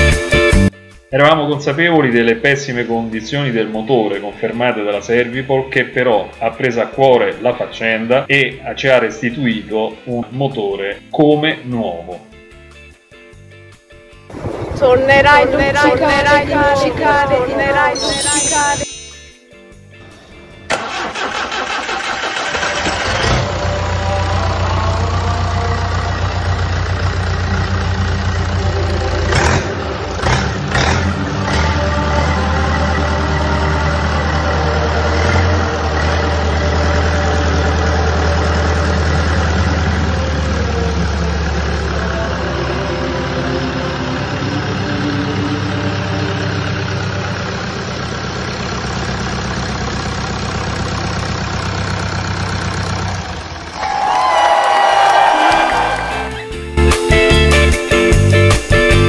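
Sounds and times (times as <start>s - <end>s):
diesel engine starting and idling: 14.2s - 18.8s, 19.8s - 59.0s.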